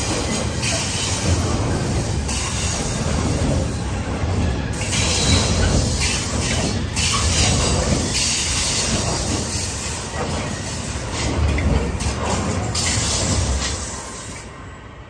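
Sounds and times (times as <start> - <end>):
freight train wheels rumbling: 0.0 - 15.0.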